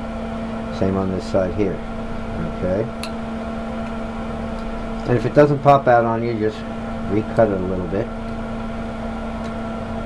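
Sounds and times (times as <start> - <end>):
steady mechanical hum: 0.0 - 10.0.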